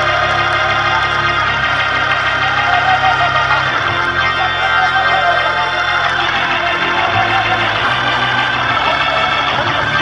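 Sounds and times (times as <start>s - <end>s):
organ chords: 0.0s - 10.0s.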